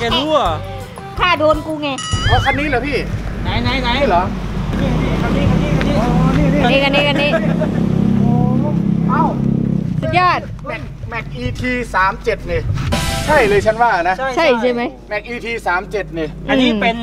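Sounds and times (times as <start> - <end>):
vehicle engine idling: 0.0 - 17.0
people talking: 1.2 - 9.4, 13.3 - 17.0.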